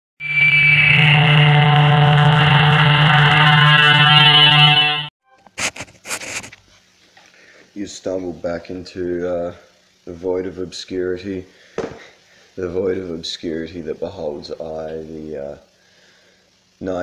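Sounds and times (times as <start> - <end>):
harsh distorted drone: 0.2 - 5.1
short hissing bursts: 5.6 - 6.6.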